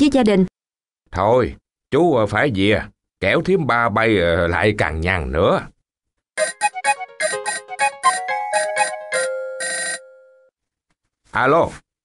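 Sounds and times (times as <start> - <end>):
phone ringtone melody: 6.4 - 10.5.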